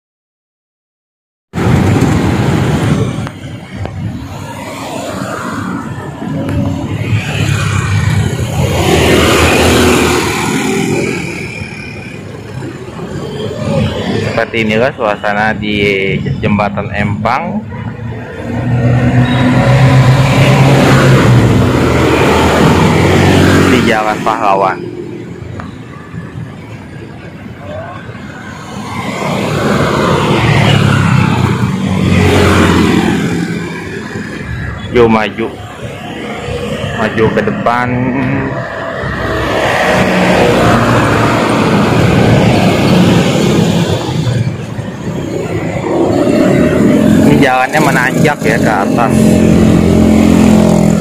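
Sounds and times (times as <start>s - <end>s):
road traffic passing close: 1.5s - 51.0s.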